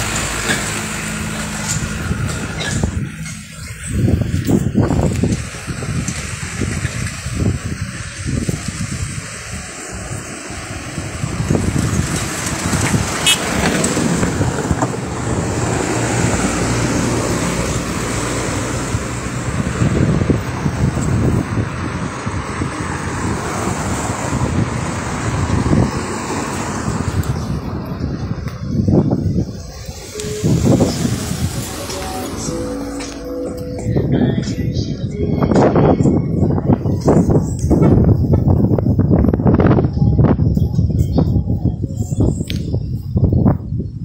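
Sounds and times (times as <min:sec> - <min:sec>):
tyre and engine noise: 0:00.0 - 0:44.0
wind buffeting microphone: 0:00.0 - 0:44.0.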